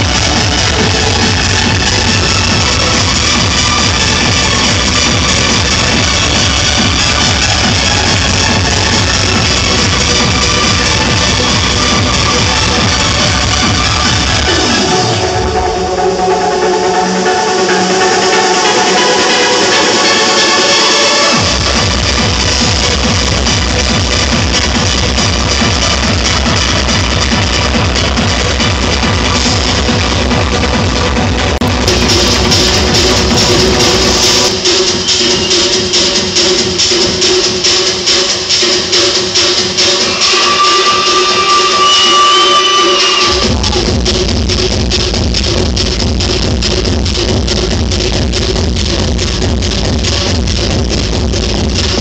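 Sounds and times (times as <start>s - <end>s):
loud noisy wash: 0.0s - 35.2s, 36.3s - 52.0s
electronic dance music: 0.0s - 52.0s.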